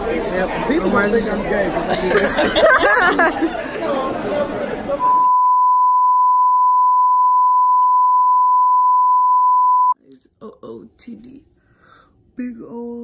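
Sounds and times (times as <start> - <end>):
people chattering: 0.0 - 5.3
laughter: 1.8 - 3.8
high-pitched test-tone beep: 5.0 - 10.0.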